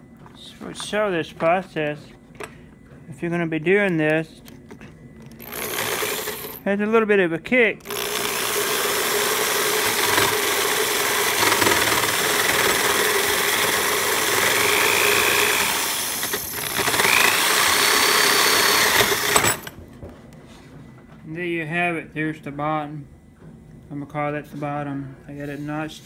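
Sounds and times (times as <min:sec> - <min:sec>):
jigsaw cutting bamboo: 0:05.4 - 0:06.6, 0:07.8 - 0:19.8.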